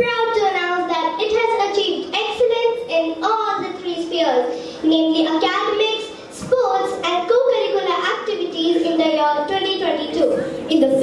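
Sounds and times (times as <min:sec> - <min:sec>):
girl reading aloud: 0:00.0 - 0:11.0.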